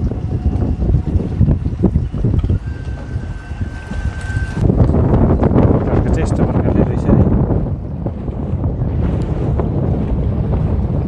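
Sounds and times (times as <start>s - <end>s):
boat running over water: 0.0s - 11.0s
wind buffeting microphone: 0.0s - 11.0s.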